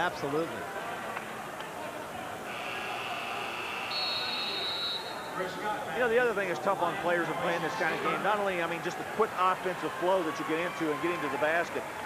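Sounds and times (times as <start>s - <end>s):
arena crowd noise: 0.0s - 12.0s
long high whistles: 2.5s - 5.3s.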